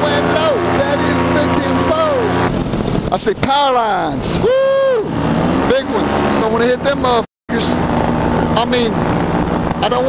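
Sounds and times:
paramotor engine droning: 0:00.0 - 0:03.1, 0:04.2 - 0:10.0.

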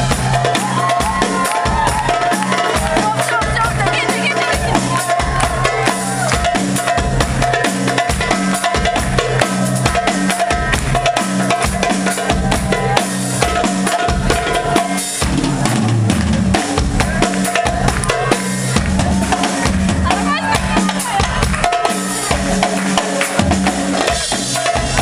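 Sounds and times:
drum kit: 0:00.0 - 0:25.0.

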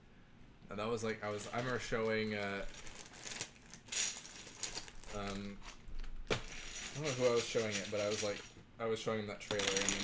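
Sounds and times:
plastic bag crinkling: 0:01.2 - 0:08.5, 0:09.4 - 0:10.0
plastic bricks clattering: 0:09.5 - 0:10.0.

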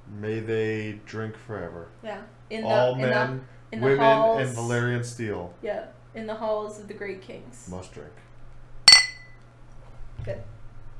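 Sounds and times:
drinking glasses clinking: 0:08.9 - 0:09.4.

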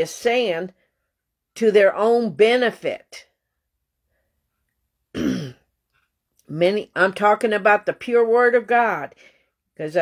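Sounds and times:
woman clearing her throat: 0:05.1 - 0:05.7.

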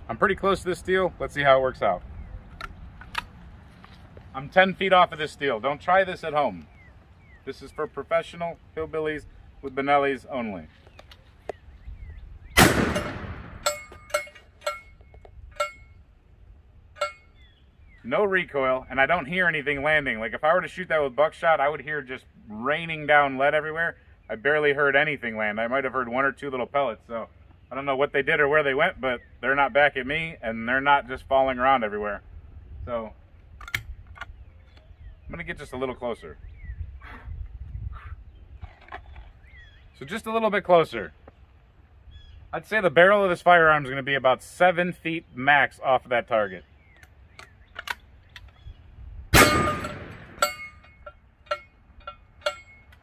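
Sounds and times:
faint bird chirps: 0:06.4 - 0:08.1, 0:34.3 - 0:40.1, 0:42.0 - 0:42.6
shotgun shot hitting steel: 0:12.6 - 0:14.3, 0:49.4 - 0:50.8
ringing metallic clinks: 0:13.6 - 0:16.0, 0:17.0 - 0:17.4, 0:49.4 - 0:53.0.

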